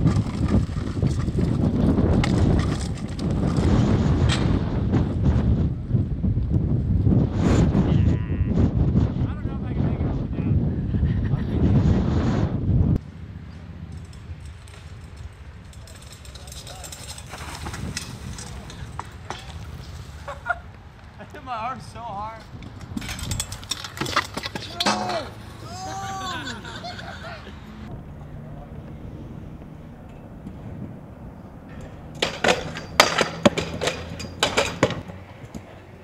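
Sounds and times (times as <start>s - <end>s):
body and scooter scraping through dirt: 0.0s - 4.6s, 16.2s - 20.6s
wind buffeting microphone: 0.0s - 13.0s, 16.6s - 25.8s, 27.7s - 36.0s.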